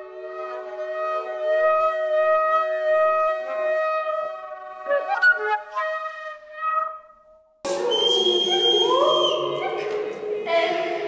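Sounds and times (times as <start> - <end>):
group of voices singing: 7.7 - 11.0.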